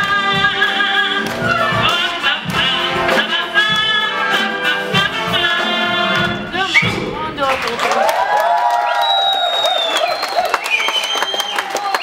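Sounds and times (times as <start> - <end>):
audience applauding and cheering: 0.0 - 3.1, 6.1 - 12.0.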